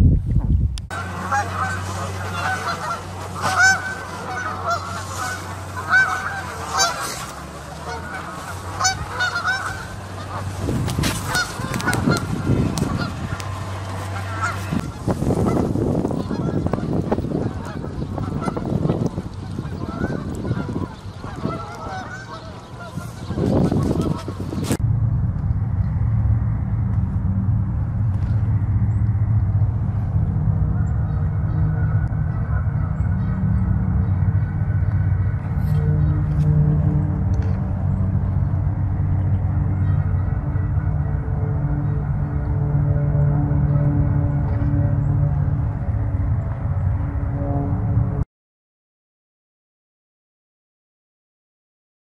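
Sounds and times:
low rumbling noise: 0.0 - 48.3
geese honking: 0.9 - 24.8, 28.1 - 48.2.

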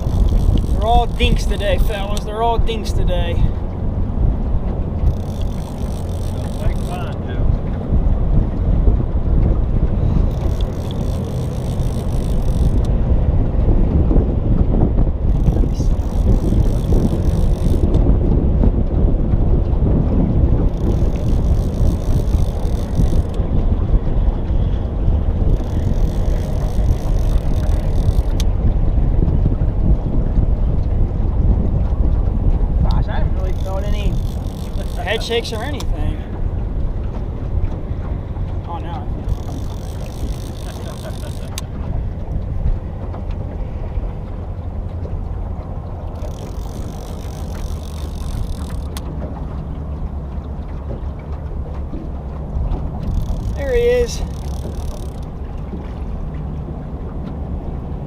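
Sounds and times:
fishing reel cranking: 0.0 - 3.5, 5.0 - 7.2, 10.1 - 13.0, 15.2 - 18.1, 20.6 - 23.5, 25.4 - 28.5, 33.0 - 36.1, 38.8 - 41.8, 46.0 - 49.1, 53.0 - 55.4
wind rumbling on microphone: 0.0 - 58.0.

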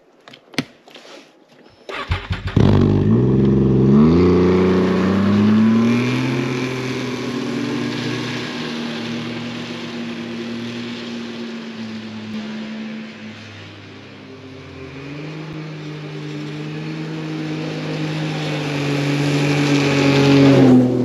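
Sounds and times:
snowmobile engine cranking: 1.9 - 8.0
snowmobile engine revving: 1.9 - 21.0.

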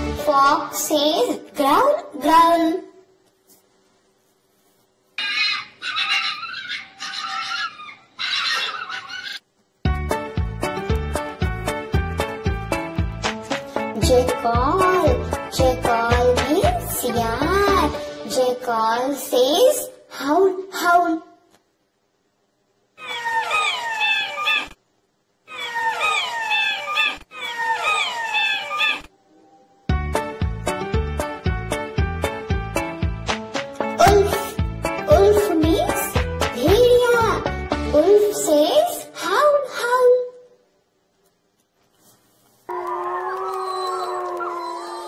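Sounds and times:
fox crying: 5.2 - 9.4, 23.0 - 24.8, 25.5 - 29.1, 42.7 - 45.0
jackal howling: 5.2 - 9.4, 25.5 - 29.7, 42.7 - 45.0.

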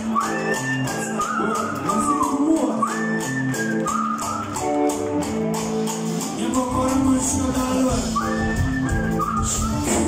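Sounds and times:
bass guitar: 0.0 - 10.0.

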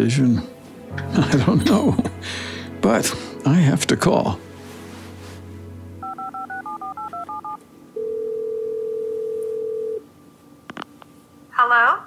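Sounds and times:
telephone key beeps: 6.0 - 7.6
ringback tone: 6.0 - 10.0.

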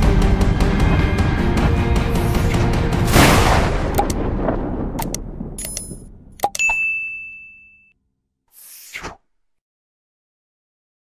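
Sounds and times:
theme music: 0.0 - 6.4
sharp clicks: 3.9 - 4.2, 5.0 - 6.7
bell-like ding: 6.6 - 8.0.

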